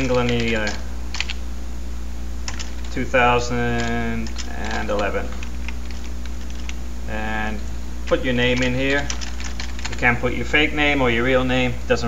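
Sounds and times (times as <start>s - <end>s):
keyboard typing: 0.0s - 1.4s, 2.5s - 6.8s, 8.1s - 10.2s
steady low hum: 0.0s - 12.0s.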